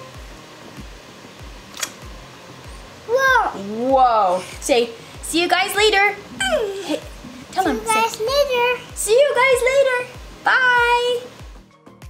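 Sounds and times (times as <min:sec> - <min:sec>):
music with low thumping beat: 0:00.0 - 0:02.9, 0:11.4 - 0:12.0
kiss smack: 0:01.7 - 0:02.1.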